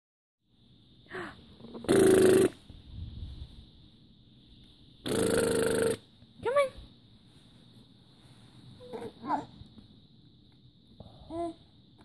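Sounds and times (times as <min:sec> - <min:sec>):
baby cooing: 0:08.8 - 0:09.6.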